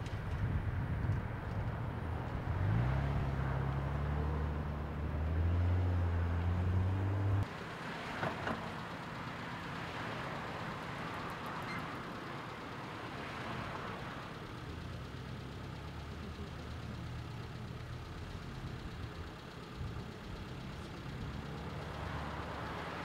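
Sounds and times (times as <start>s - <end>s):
car approaching: 0.0s - 23.0s
vehicle engine idling: 0.0s - 23.0s.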